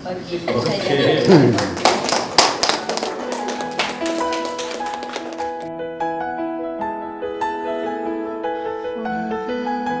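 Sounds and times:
scattered handclaps: 1.5s - 5.7s
slow piano music: 2.5s - 10.0s.

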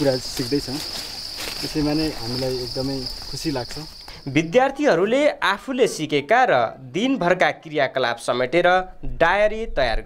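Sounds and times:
insect chorus trilling: 0.0s - 5.2s.

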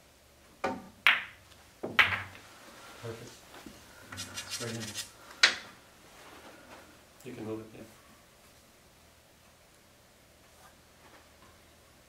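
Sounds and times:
cue tip tapping ball: 0.6s - 2.4s.

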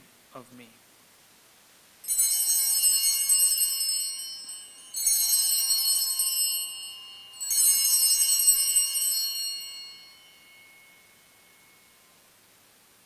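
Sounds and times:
small bells ringing: 2.0s - 12.4s.

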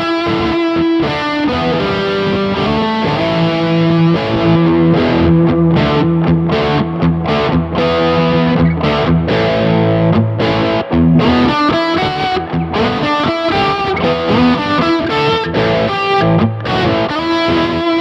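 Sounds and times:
distorted electric guitar: 0.0s - 18.0s.

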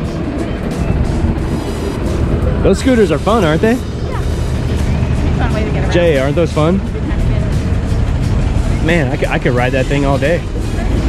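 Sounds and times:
low rumble of traffic: 0.0s - 11.0s.

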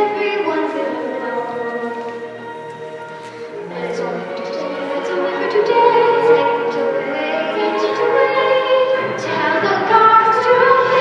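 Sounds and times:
girls singing a duet: 0.0s - 11.0s.

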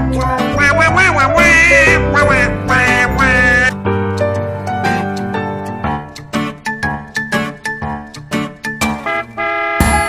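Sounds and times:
cheerful orchestral cartoon music: 0.0s - 5.1s
quacking cartoon voice: 0.4s - 3.8s.

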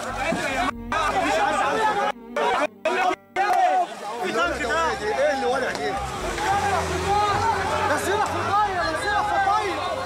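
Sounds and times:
people shouting and talking: 0.0s - 10.0s.

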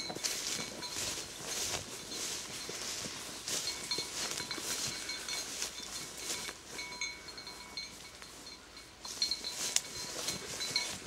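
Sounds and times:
dog collar bell tinkling: 0.0s - 11.0s
dry brush rustling: 0.0s - 11.0s.

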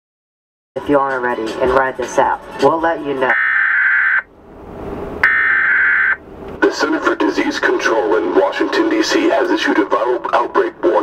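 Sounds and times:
announcer speaking: 0.8s - 4.2s, 5.2s - 11.0s
buzzing electronic alert tone: 3.3s - 4.2s, 5.2s - 6.2s.

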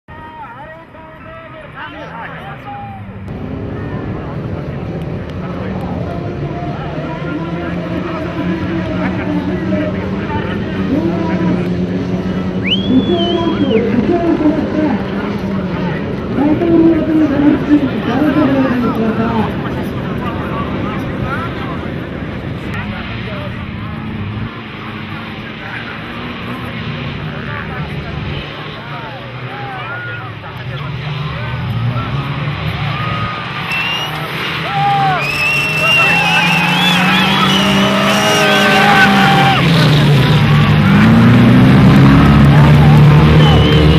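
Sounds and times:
people's voices: 0.1s - 43.9s
truck engines running hard: 0.1s - 43.9s.

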